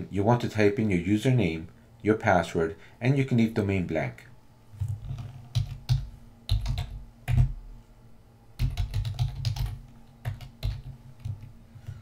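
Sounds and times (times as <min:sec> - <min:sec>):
keyboard typing clicks: 0:05.1 - 0:07.5, 0:08.6 - 0:11.5.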